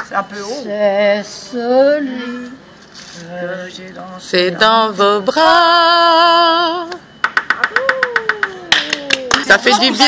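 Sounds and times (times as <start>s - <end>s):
people clapping quickly: 7.2s - 9.6s.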